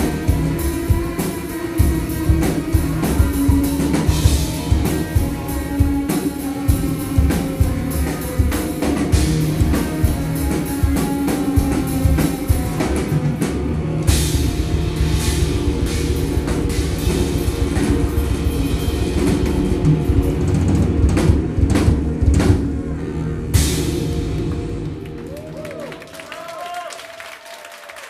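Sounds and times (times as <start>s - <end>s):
live band playing: 0.0s - 25.7s.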